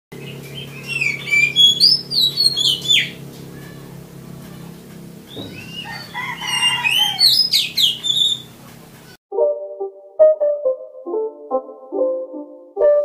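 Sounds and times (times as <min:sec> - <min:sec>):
steady low hum: 0:00.1 - 0:09.2
bird singing whistles: 0:00.2 - 0:03.2, 0:05.3 - 0:08.5.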